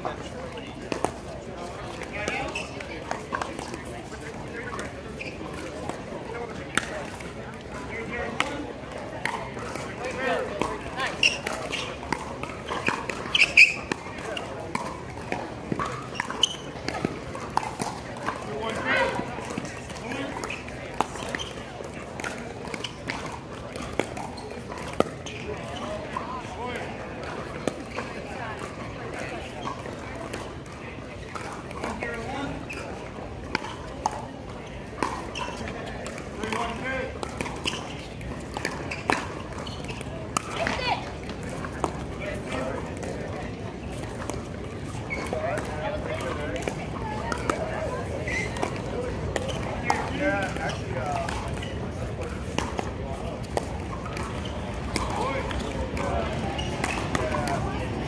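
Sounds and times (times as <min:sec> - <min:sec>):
paddles hitting plastic ball: 0:00.7 - 0:58.0.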